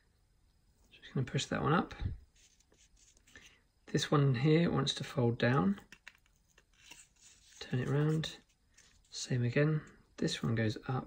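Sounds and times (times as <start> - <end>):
cardboard rustling and scraping: 2.3 - 3.3, 5.9 - 9.2.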